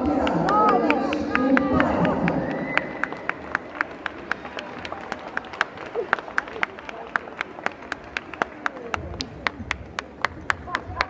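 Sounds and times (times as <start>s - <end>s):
people clapping in a hall: 0.0s - 11.0s
voices: 0.0s - 11.0s.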